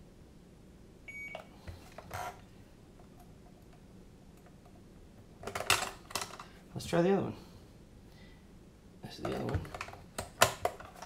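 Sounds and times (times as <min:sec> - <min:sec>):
short electronic beep: 0:01.1 - 0:01.4.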